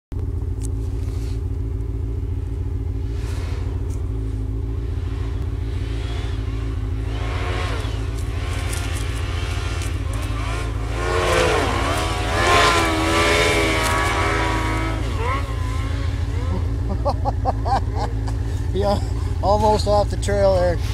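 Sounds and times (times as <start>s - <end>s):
steady low hum: 0.1s - 20.9s
snowmobile engine revving: 2.1s - 20.9s.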